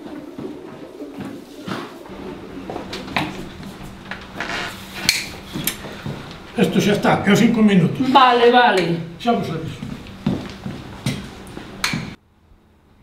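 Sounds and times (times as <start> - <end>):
low hum: 2.1 - 12.2.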